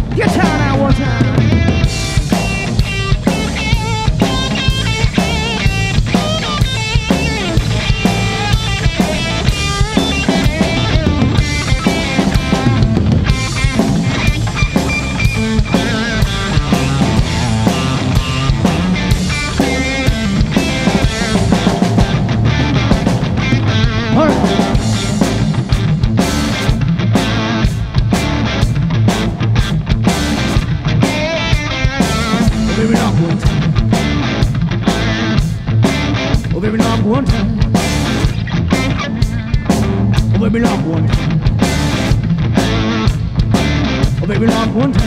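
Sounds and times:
bass guitar: 0.0 - 45.0
drum kit steady beat: 0.0 - 45.0
electric guitar lead lines: 0.0 - 45.0.

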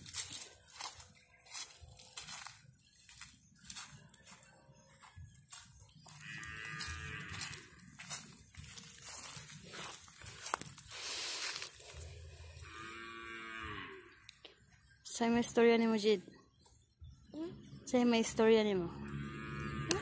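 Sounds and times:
cow mooing: 6.2 - 7.7, 12.6 - 14.2, 18.9 - 20.0.

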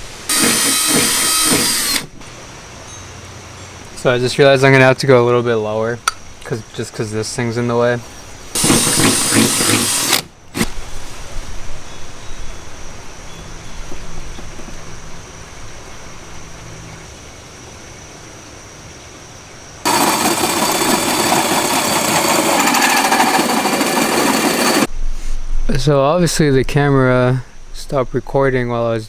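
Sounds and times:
cordless drill running: 0.3 - 2.1, 8.6 - 10.3, 19.9 - 24.9
drill grinding through sheet metal: 0.3 - 2.1, 8.6 - 10.7, 19.9 - 24.9.

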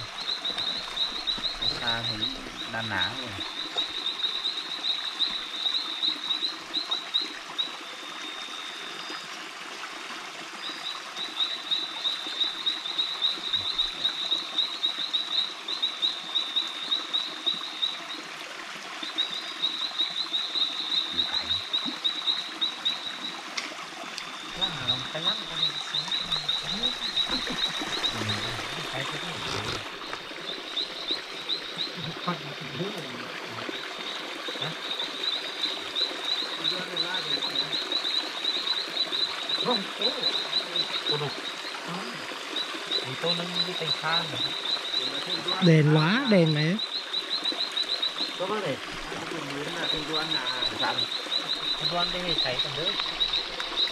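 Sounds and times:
frog trilling: 0.0 - 7.8, 11.3 - 18.1, 19.2 - 23.4, 24.2 - 53.9.

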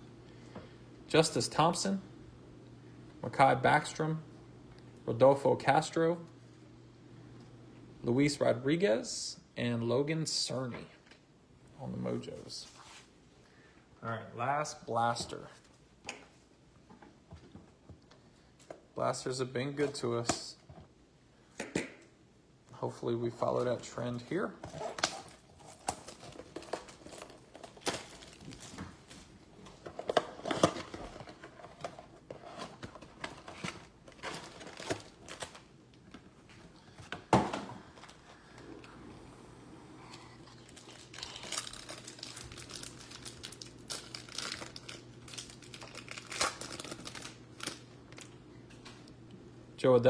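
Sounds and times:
faint low hum: 0.0 - 50.0
plastic wrapping crinkling and tearing: 24.7 - 35.7, 40.4 - 48.4.

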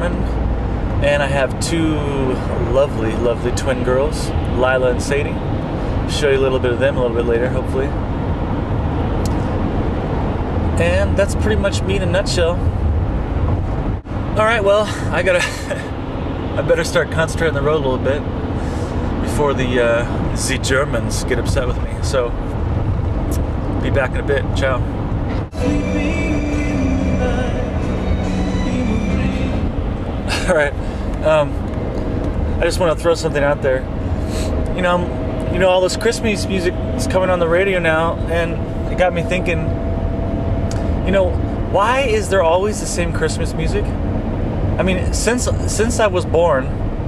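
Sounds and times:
car road and engine rumble: 0.0 - 47.0
music from car radio: 25.5 - 29.9.

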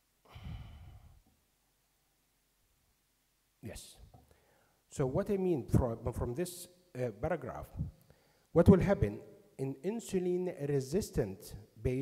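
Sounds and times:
man sighing into microphone: 0.3 - 1.2.

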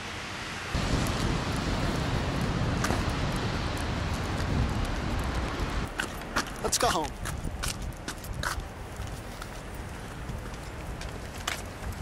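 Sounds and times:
footsteps on wet pavement: 0.8 - 12.0.

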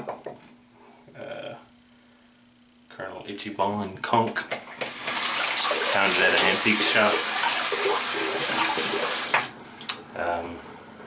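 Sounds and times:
water running from sink faucet: 4.8 - 9.5.

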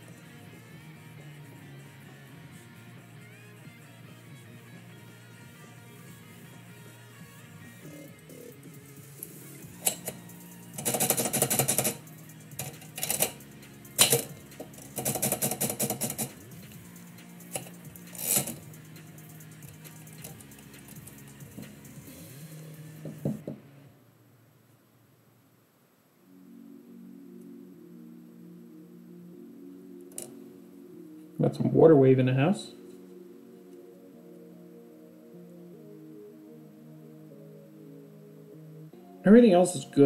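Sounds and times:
soft background music: 0.0 - 24.4, 26.2 - 40.0
manual typewriter typing: 10.8 - 12.0, 12.6 - 13.4, 14.0 - 16.4.

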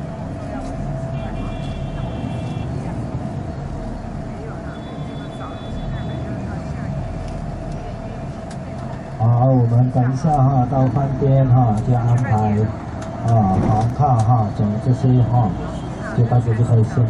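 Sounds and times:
bus engine and road rumble: 0.0 - 17.0
high-pitched vehicle horn: 1.1 - 2.8, 4.6 - 6.4.

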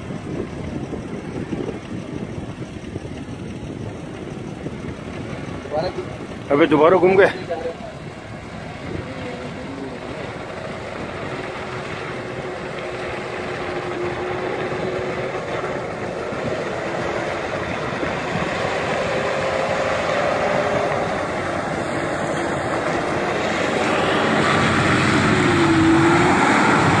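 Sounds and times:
tyres churning through wet sand: 0.0 - 27.0
vehicle engine running: 0.0 - 27.0.

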